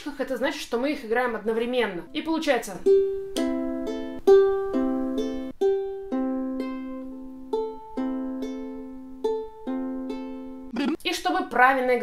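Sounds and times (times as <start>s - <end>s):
ukulele fingerpicked arpeggio: 2.8s - 10.7s.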